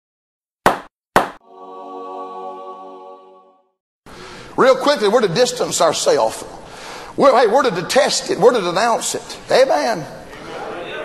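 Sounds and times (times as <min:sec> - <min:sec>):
held musical chord: 0:01.4 - 0:03.8.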